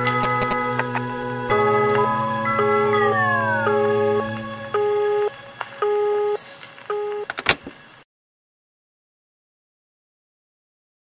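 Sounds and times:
pulsing synth beep: 0.0 - 0.8, 1.5 - 7.3.

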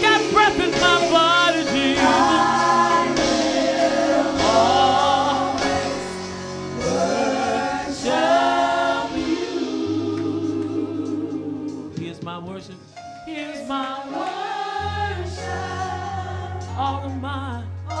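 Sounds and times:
singers singing worship song: 0.0 - 12.4, 13.2 - 17.4
live band sustained low notes: 0.0 - 13.8, 14.8 - 18.0.

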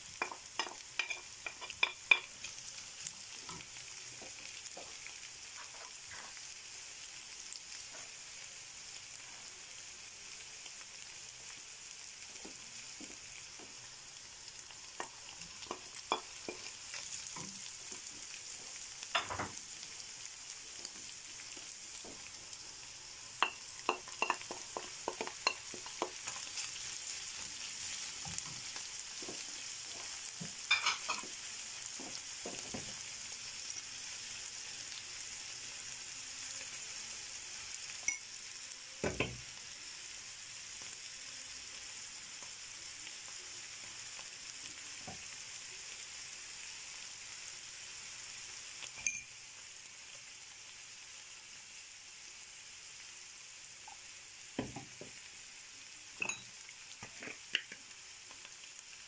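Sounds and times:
food sizzling in a frying pan: 0.0 - 59.0
wooden spoon knocking on pan: 0.2 - 2.3, 23.4 - 26.4, 32.0 - 33.0, 39.0 - 39.4, 54.6 - 55.2.

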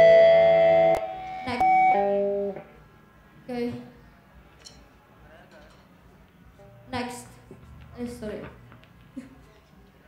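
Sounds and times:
electric guitar chord: 0.0 - 2.6
held guitar notes: 0.0 - 2.6.

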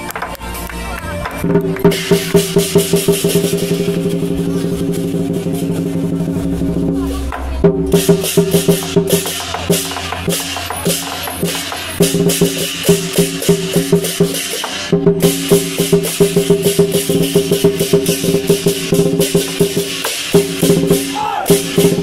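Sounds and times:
lion dance drum cymbals and gong: 1.3 - 22.0.

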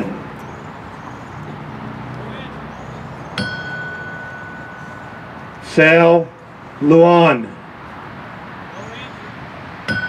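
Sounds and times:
brass bell ringing: 3.4 - 6.4.

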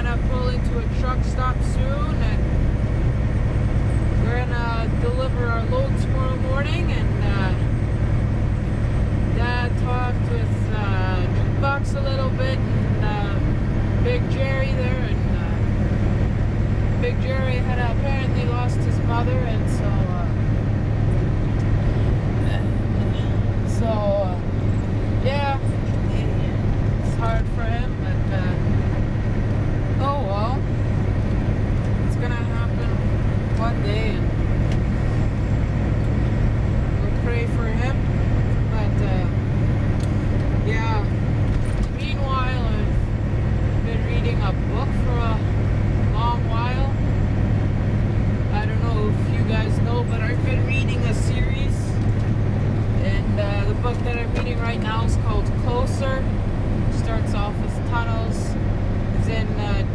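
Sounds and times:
diesel truck engine drone: 0.0 - 59.9
road noise: 0.0 - 59.9.

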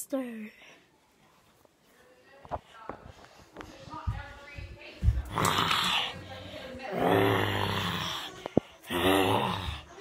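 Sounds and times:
child making monster growls: 6.9 - 10.0.

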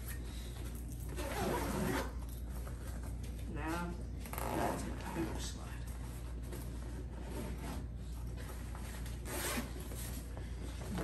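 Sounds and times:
backpack zipper being pulled: 1.1 - 2.2, 9.2 - 9.8.

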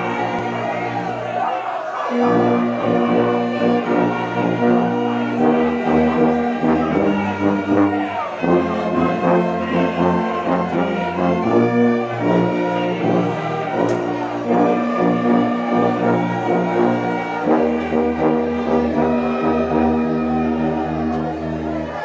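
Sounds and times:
brass orchestra playing a hymn: 0.0 - 22.0
tuba bass line: 2.1 - 21.9.

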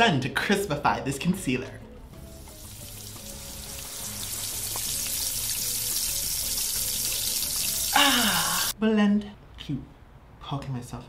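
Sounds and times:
faint background music: 0.0 - 11.0
sizzling hiss: 2.2 - 8.7.

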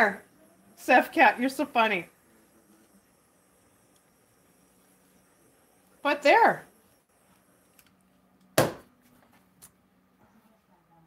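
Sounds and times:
faint low hum: 0.0 - 11.0
faint clicks and handling noises: 7.3 - 8.5
hard object knocking on counter: 8.6 - 8.9.

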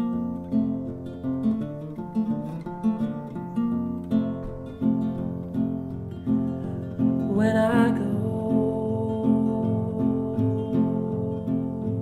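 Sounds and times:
plucked acoustic guitar: 0.0 - 12.0.

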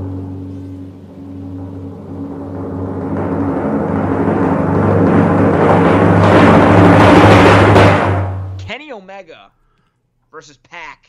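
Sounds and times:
timpani drum roll: 0.0 - 8.8.

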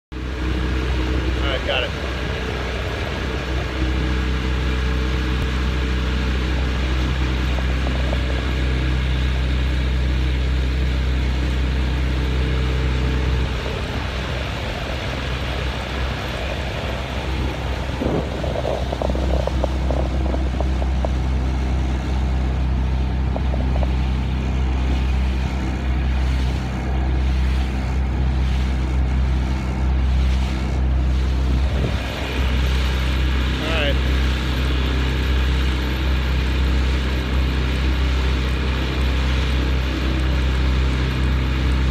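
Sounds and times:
outboard motor running: 0.1 - 41.9.

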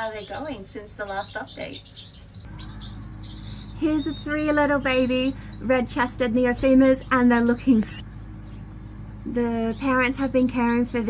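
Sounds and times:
low steady rumble: 0.0 - 11.0
small birds chirping: 0.0 - 11.0.

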